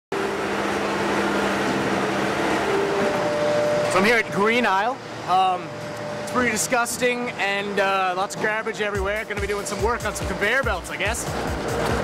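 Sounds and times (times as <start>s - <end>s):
skid-steer loader running: 0.1s - 12.0s.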